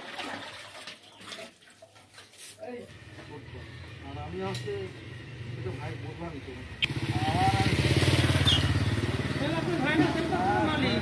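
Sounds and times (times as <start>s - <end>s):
motorcycle engine running: 2.9s - 11.0s
people talking: 5.6s - 7.8s, 9.3s - 11.0s.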